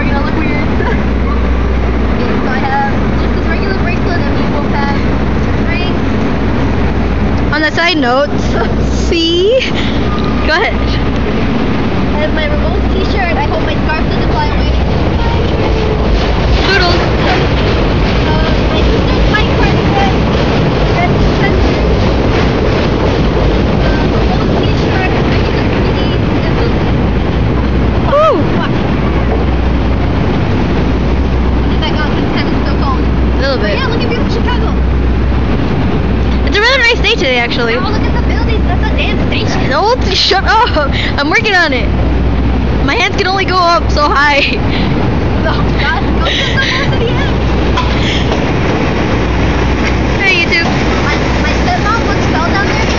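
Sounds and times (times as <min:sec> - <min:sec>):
wind buffeting microphone: 0:00.0 - 0:52.9
faint voices: 0:36.0 - 0:52.9.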